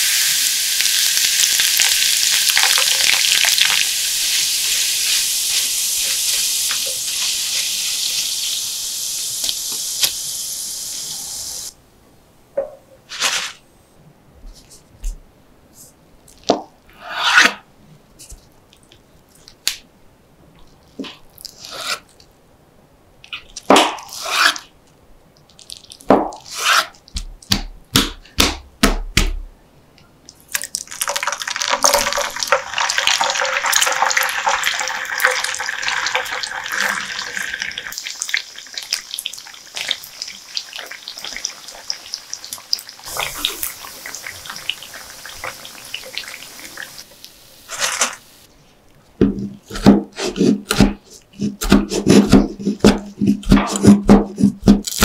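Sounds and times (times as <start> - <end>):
tofu sizzling in hot oil: 0.0 - 11.7, 30.9 - 48.5
knife chopping on wooden board: 26.1 - 29.4, 49.2 - 54.9.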